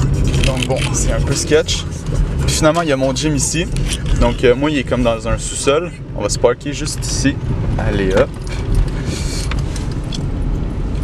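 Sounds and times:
car engine rumble inside cabin: 0.0 - 11.0.

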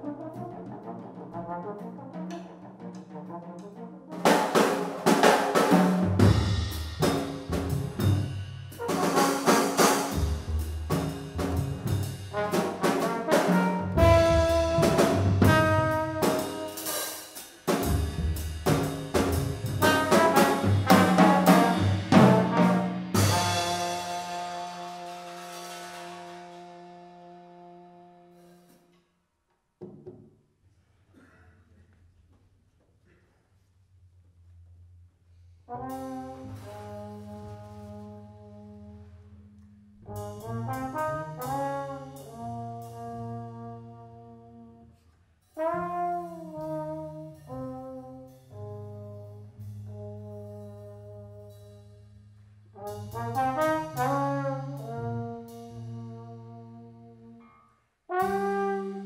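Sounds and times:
double bass: 0.0 - 28.8, 33.9 - 57.5, 58.1 - 59.0
trombone: 0.0 - 29.0, 35.7 - 52.0, 52.7 - 59.0
drum kit: 1.9 - 28.9, 35.7 - 38.8, 40.0 - 44.0, 52.8 - 56.5, 58.1 - 59.0.

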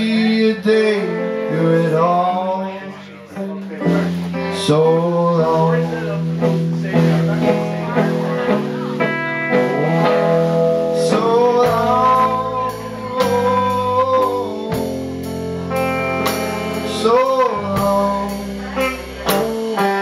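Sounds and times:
electric guitars: 0.0 - 20.0
drum kit: 3.4 - 20.0.

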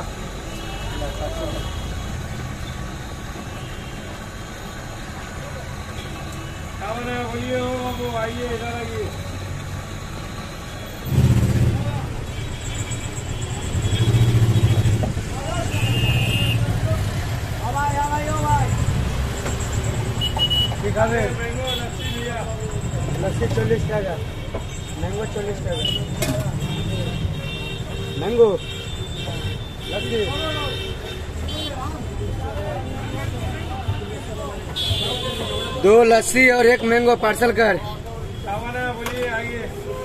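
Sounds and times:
vehicle engines running: 0.0 - 39.9
traffic rumble: 0.0 - 40.0.

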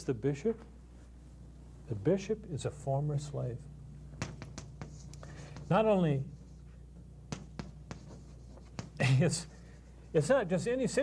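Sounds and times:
low steady hum: 0.0 - 11.0
chalk tapping on chalkboard: 4.2 - 6.5, 7.3 - 9.5.

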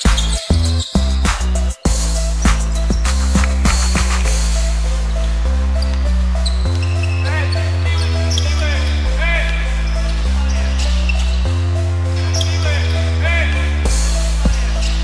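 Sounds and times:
background music with bass line: 0.0 - 15.0.

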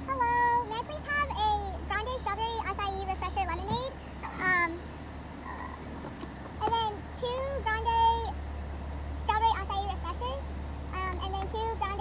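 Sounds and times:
high-pitched voice: 0.0 - 4.8, 9.2 - 12.0
car engine idling: 0.0 - 12.0.

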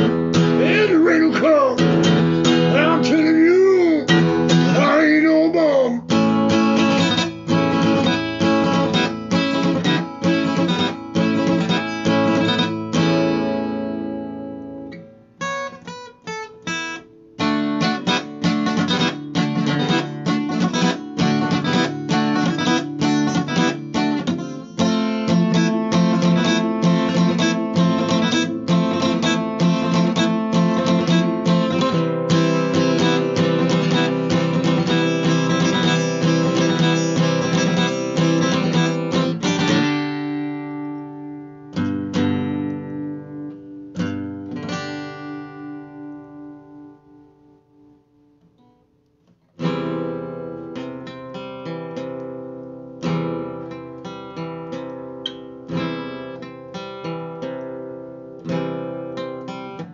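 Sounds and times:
acoustic guitar strumming: 0.0 - 59.9
guitar notes picked: 0.0 - 59.9.

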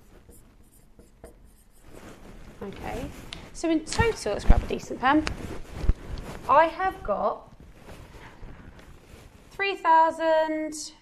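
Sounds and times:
marker writing on whiteboard: 0.0 - 2.0.

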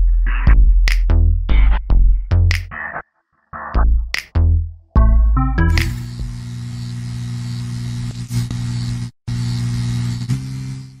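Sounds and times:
buzzing synth drone: 5.7 - 11.0
static hiss: 5.8 - 11.0.

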